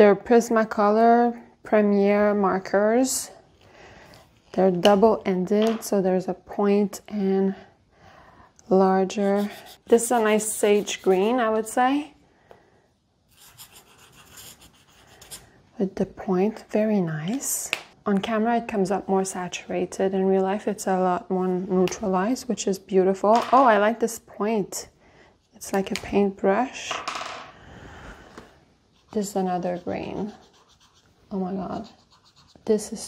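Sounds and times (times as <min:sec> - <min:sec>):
marker scratching on paper: 0:09.1 - 0:11.5, 0:13.3 - 0:15.4, 0:28.9 - 0:33.0.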